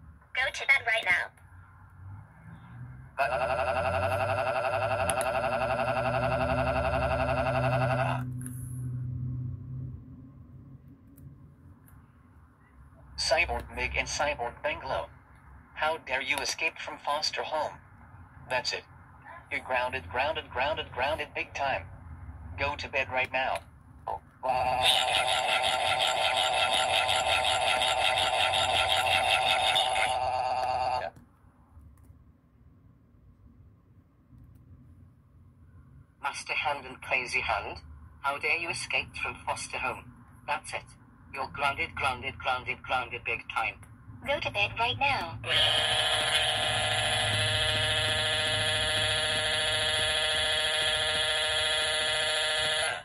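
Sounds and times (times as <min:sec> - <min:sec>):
low hum: 0:02.0 - 0:15.1.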